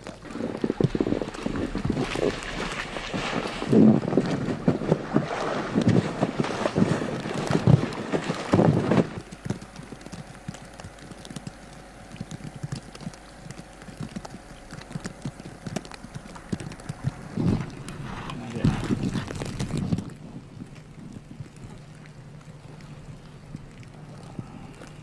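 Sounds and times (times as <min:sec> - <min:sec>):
low steady hum: 0:00.0 - 0:25.0
snow crunching and scraping: 0:00.2 - 0:09.5, 0:17.0 - 0:20.5.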